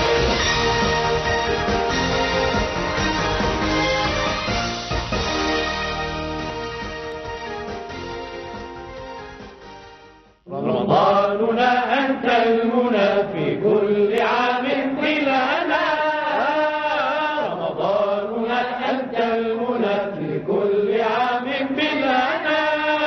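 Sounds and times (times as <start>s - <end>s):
chanted religious song: 10.5s - 23.0s.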